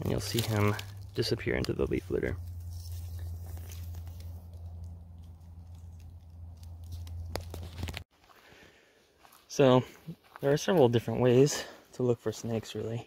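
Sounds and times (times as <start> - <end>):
dry leaves rustling and crackling: 0.0 - 8.0
steady low rumble: 0.0 - 8.0.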